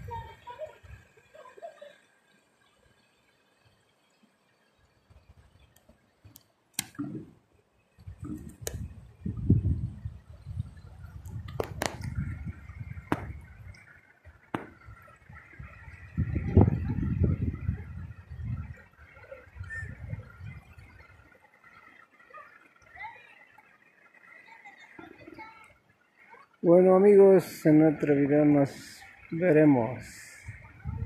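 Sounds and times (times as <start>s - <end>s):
wind buffeting microphone: 0.0s - 1.1s, 8.0s - 21.3s, 29.8s - 31.0s
shallow river over stones: 0.0s - 31.0s.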